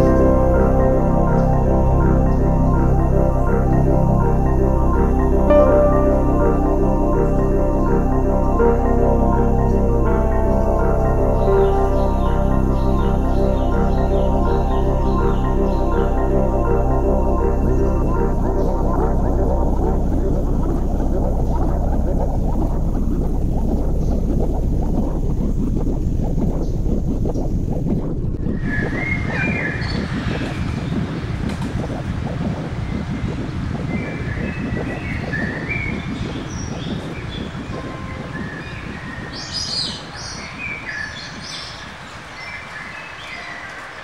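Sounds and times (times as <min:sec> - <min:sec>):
birds chirping: 0:00.0 - 0:32.0, 0:32.8 - 0:44.0
low rushing noise: 0:00.0 - 0:36.2.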